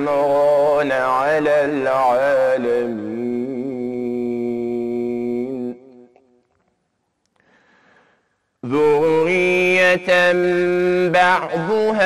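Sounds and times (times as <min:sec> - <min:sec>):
man reciting melodically: 0:00.0 - 0:06.0, 0:08.6 - 0:12.0.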